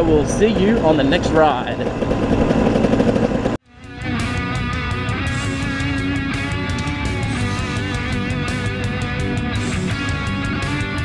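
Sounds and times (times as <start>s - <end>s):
dirt bike engine running: 0.0s - 3.6s.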